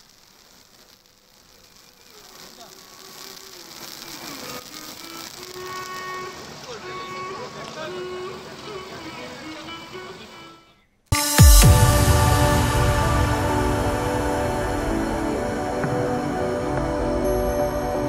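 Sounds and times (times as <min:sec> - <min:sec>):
crowd chatter: 0:05.6 - 0:10.6
music with gliding held notes: 0:09.9 - 0:18.0.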